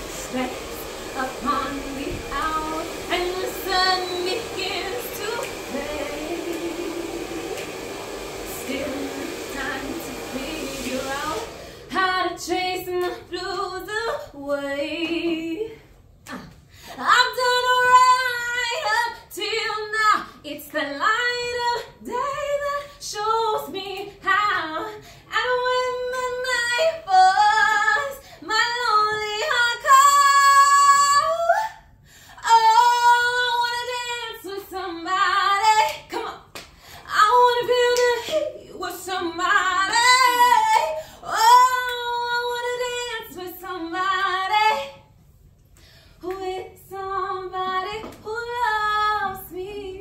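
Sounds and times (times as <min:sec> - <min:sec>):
woman singing unaccompanied: 0:00.0 - 0:07.8, 0:08.4 - 0:15.8, 0:17.0 - 0:31.6, 0:32.4 - 0:36.5, 0:37.1 - 0:45.0, 0:46.2 - 0:50.0
singer breathing: 0:11.6 - 0:11.9, 0:31.9 - 0:32.4, 0:36.7 - 0:37.1, 0:45.7 - 0:46.2.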